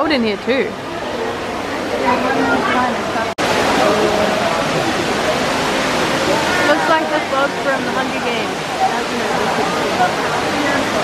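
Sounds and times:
people talking: 0.0 - 0.8, 1.7 - 11.0
waterfall rushing: 0.2 - 11.0.

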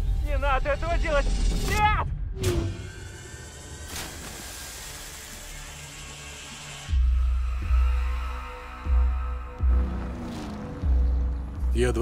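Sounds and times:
tense low musical bed: 5.7 - 12.0.

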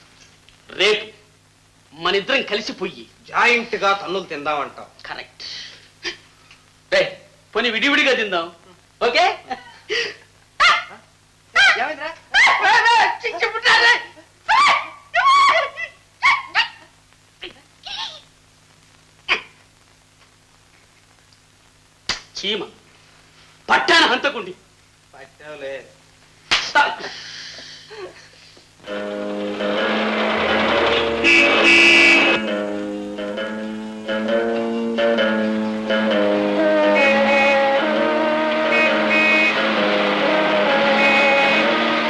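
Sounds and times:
film music with sustained notes: 28.9 - 31.6, 32.2 - 42.0
car horn blasts: 30.9 - 32.5, 36.9 - 37.8, 38.6 - 42.0.

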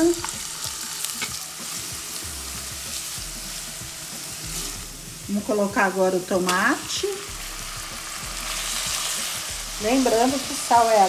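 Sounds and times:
onion and garlic sizzling in oil: 0.0 - 11.0.

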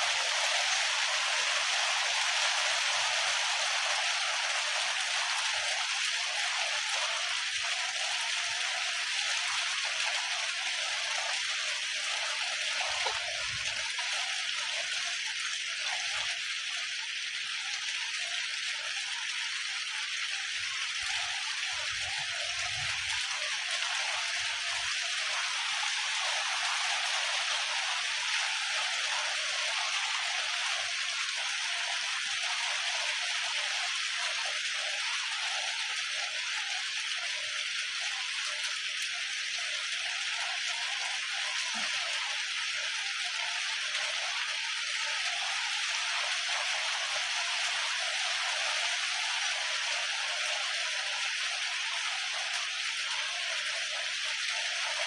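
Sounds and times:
steady rain falling: 0.0 - 55.0.

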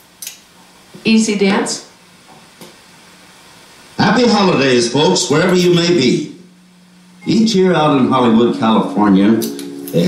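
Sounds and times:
faint steady hum: 0.0 - 10.0
room tone hiss: 0.0 - 10.0.

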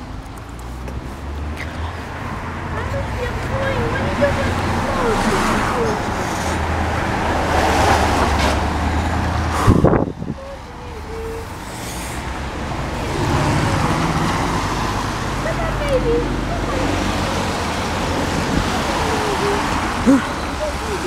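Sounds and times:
cars driving past: 0.0 - 21.0.

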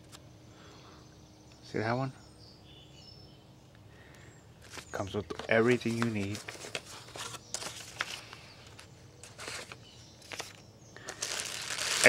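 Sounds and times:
plastic bags crinkling: 4.7 - 12.0.

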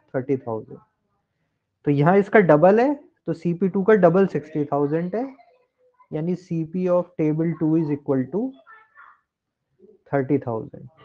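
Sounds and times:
man speaking: 0.0 - 0.8, 1.9 - 5.4, 6.1 - 8.5, 10.1 - 11.0.

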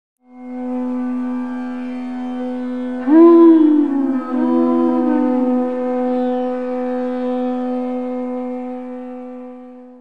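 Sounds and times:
harmonium drone: 0.3 - 10.0.

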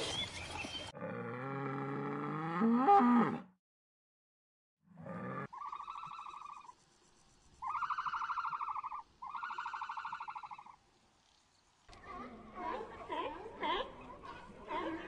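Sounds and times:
trilled animal calls: 5.5 - 6.8, 7.6 - 10.8.

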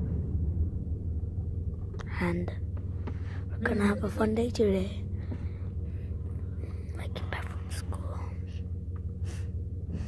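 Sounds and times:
car cabin rumble: 0.0 - 10.0
breathy whispered sounds: 5.2 - 10.0.

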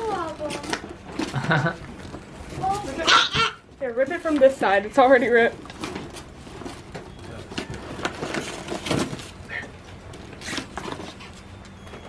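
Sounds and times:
paper bag rustling: 0.0 - 3.3, 4.2 - 11.7.

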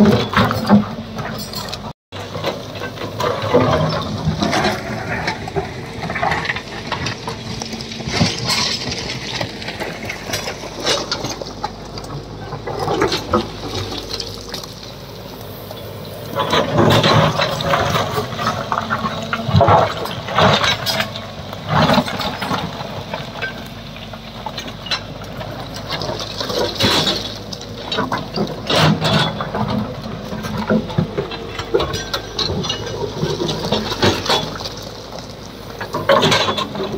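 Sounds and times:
excavator engine humming: 0.0 - 36.9
stones and rubble clattering: 0.0 - 36.9.

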